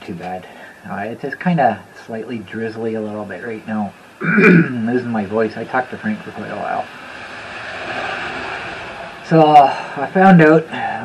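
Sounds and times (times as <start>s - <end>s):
tyre hiss on wet road: 6.6s - 11.0s.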